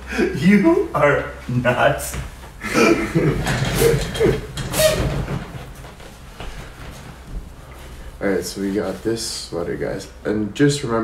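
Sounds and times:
sweater rustling: 3.2s - 9.6s.

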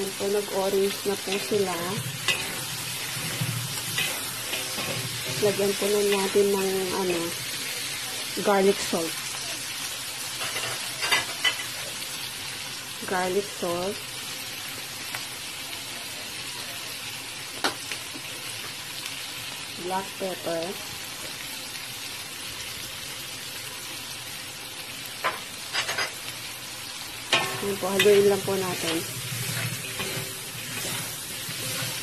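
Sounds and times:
shrimp sizzling in a frying pan: 0.0s - 32.0s.

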